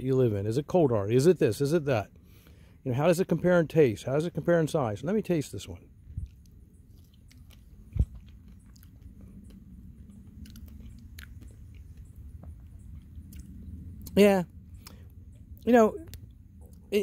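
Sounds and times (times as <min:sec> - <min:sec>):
person chewing fruit: 0:06.0 - 0:16.9
wet mouth clicks: 0:06.2 - 0:12.2, 0:12.9 - 0:14.2, 0:14.8 - 0:15.0.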